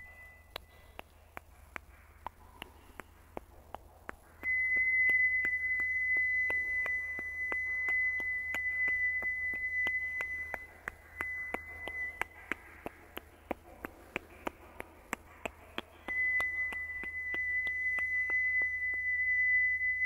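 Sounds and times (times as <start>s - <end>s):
high steady pure tone: 0.0s - 20.0s
regular ticking: 0.0s - 20.0s.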